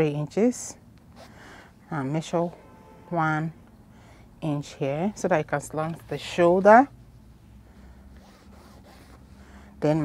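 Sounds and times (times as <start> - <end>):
low steady hum: 0.0 - 10.0
marker scratching on fabric: 8.2 - 9.3.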